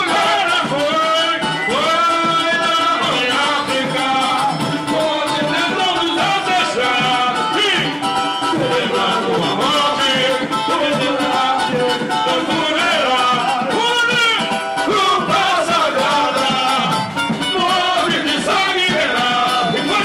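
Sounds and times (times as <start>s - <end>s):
men singing on microphones: 0.0s - 20.0s
samba band playing: 0.0s - 20.0s.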